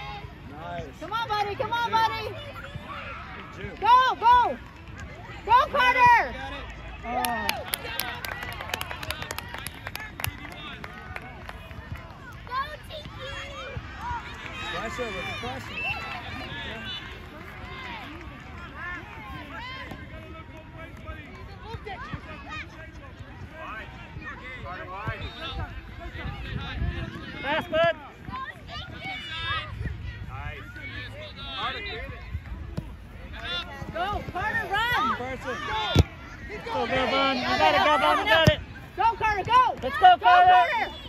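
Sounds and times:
overlapping calls and chatter: 0:00.0 - 0:41.0.

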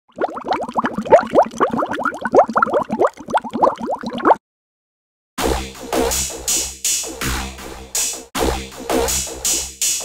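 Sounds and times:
bubbling water bloops: 0:00.1 - 0:04.4.

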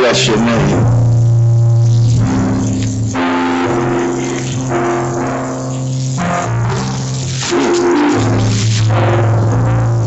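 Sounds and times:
sustained organ chords: 0:00.0 - 0:10.0.

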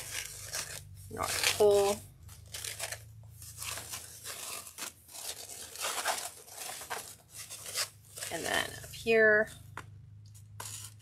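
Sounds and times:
ribbon rustling and crinkling: 0:00.0 - 0:09.5, 0:10.3 - 0:11.0.

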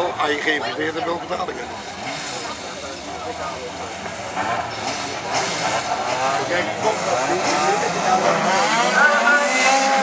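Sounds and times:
race car engines running: 0:00.0 - 0:10.0.

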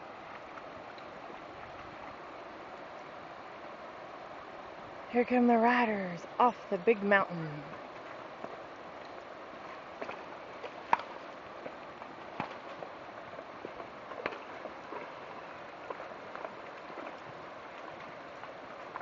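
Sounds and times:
creek water running over rocks: 0:00.0 - 0:19.0.

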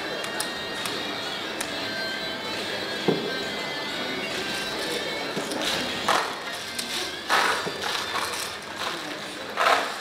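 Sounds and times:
plastic chips clattering: 0:04.5 - 0:10.0.

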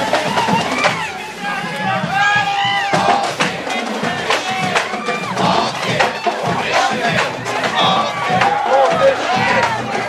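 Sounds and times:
crowd noise: 0:00.0 - 0:10.0
marching drum cadence: 0:00.0 - 0:10.0
people shouting: 0:00.0 - 0:10.0.

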